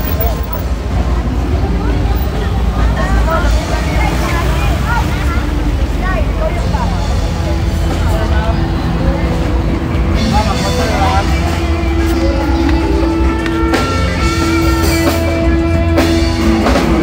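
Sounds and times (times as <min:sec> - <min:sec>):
people talking: 0:00.0 - 0:11.6
car and motorcycle engines: 0:00.0 - 0:17.0.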